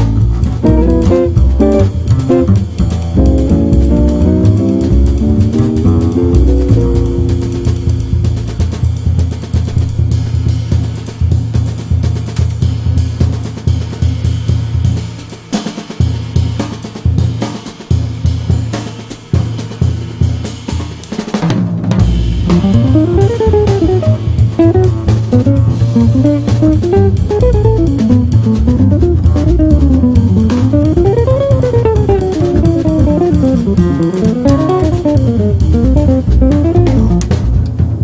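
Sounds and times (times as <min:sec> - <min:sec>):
guitar line: 0:00.0 - 0:08.7, 0:22.4 - 0:37.4
bass: 0:00.0 - 0:15.4, 0:22.0 - 0:38.0
drums: 0:00.0 - 0:38.0.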